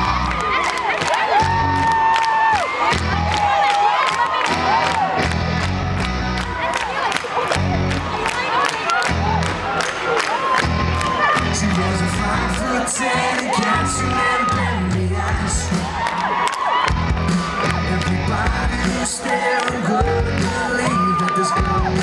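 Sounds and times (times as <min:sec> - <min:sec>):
audience cheering and whooping: 0:00.0 - 0:22.0
live pop band playing: 0:10.7 - 0:22.0
steady drum beat: 0:14.0 - 0:22.0.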